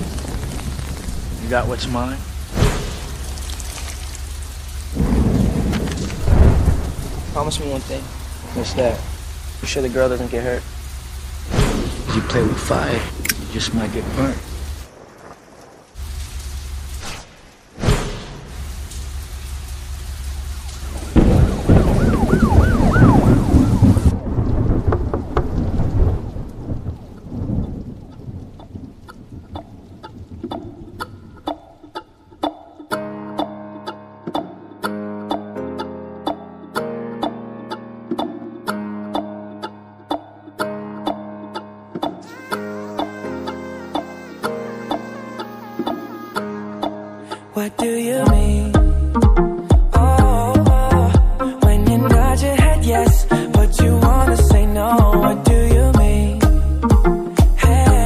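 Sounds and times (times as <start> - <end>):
rolling thunder: 0.0 - 3.6, 4.7 - 9.7, 11.4 - 18.7, 20.8 - 31.4
steady rain: 0.0 - 32.0, 42.2 - 58.0.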